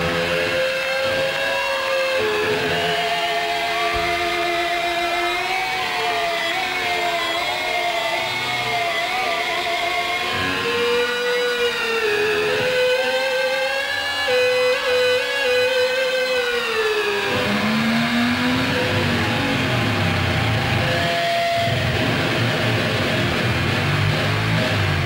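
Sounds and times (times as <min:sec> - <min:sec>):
electric guitar sustained whining note: 0:00.0 - 0:25.0
rhythmic guitar and bass rumble: 0:17.3 - 0:25.0.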